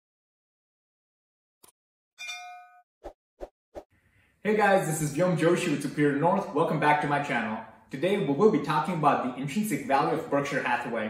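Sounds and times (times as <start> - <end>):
bell-like ding: 2.2 - 2.8.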